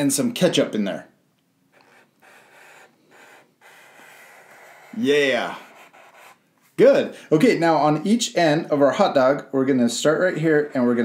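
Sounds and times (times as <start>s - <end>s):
marker scratching on paper: 1.7s - 6.4s.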